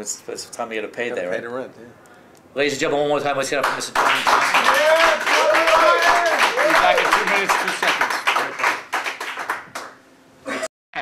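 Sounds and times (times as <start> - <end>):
audience clapping: 3.6 - 10.0.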